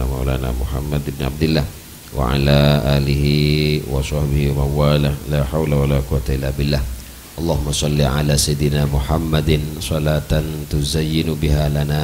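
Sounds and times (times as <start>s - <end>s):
man chanting into a microphone: 0.0s - 12.0s.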